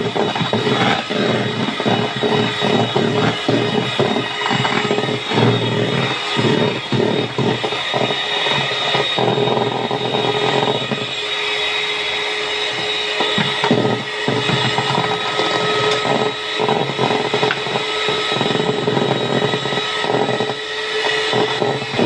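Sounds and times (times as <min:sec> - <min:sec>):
electric hand mixer running: 0:00.0 - 0:22.0.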